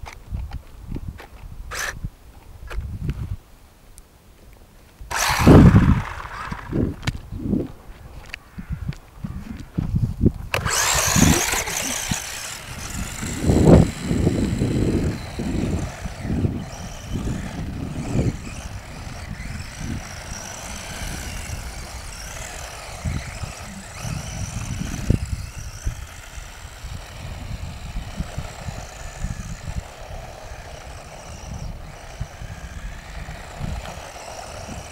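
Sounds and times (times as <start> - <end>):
wind buffeting microphone: 0.0 - 3.4, 5.1 - 34.9
toy car motor whining: 1.7 - 2.0, 5.1 - 7.2, 10.5 - 34.9.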